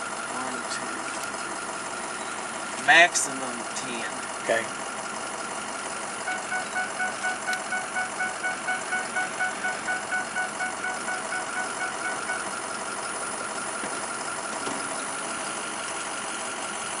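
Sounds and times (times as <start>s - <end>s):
rapid pulsed beeping: 0.0s - 17.0s
vehicle engine idling: 0.0s - 17.0s.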